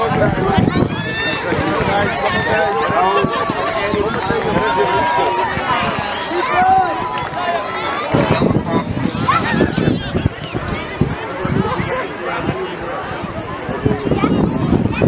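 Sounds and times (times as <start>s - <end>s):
crowd shouting: 0.0s - 15.0s.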